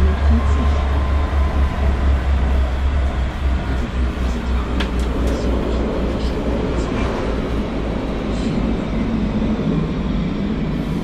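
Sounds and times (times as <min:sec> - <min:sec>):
underground train rumbling: 0:00.0 - 0:11.0.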